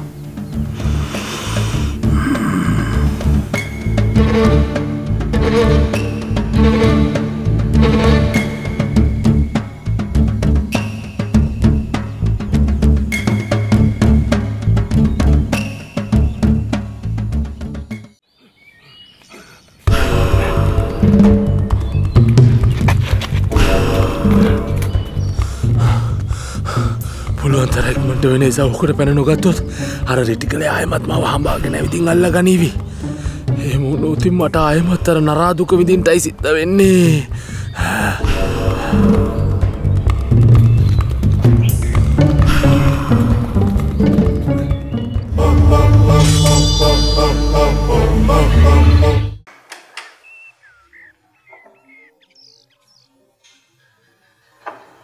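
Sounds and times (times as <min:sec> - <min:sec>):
small birds chirping: 0:00.0 - 0:04.2, 0:08.6 - 0:23.1, 0:24.5 - 0:42.5, 0:43.1 - 0:45.4, 0:49.8 - 0:55.0
low background music: 0:00.0 - 0:18.2, 0:19.9 - 0:49.5
man gasping and breathing hard: 0:00.8 - 0:03.4, 0:25.4 - 0:27.4, 0:37.3 - 0:38.3.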